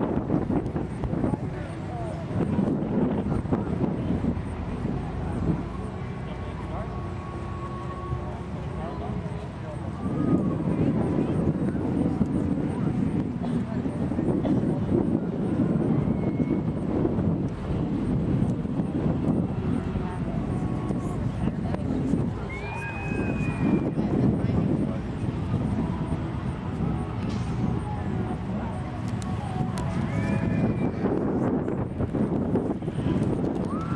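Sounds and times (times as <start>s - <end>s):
indistinct voices: 0.0s - 33.9s
low fluctuating rumbling: 0.0s - 33.9s.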